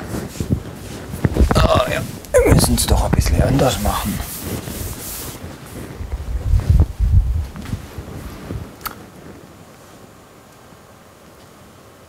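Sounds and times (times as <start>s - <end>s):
sponge swishing on chalkboard: 3.7s - 6.7s.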